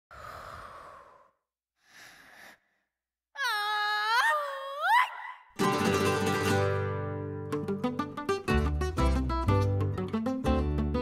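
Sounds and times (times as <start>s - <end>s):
person exhaling breathily: 0.1s - 3.0s.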